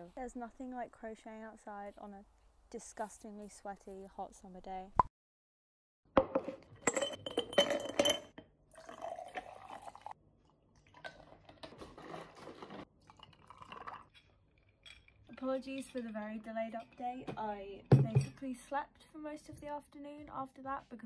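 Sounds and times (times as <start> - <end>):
glass jar clinking with ice: 6.8 - 10.1, 13.1 - 17.1
liquid pouring into jar: 8.7 - 10.2, 10.8 - 14.2.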